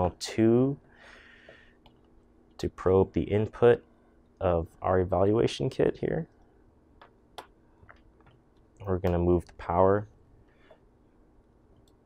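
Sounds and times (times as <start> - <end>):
man talking: 0.0 - 0.8, 2.6 - 6.4, 8.8 - 10.1.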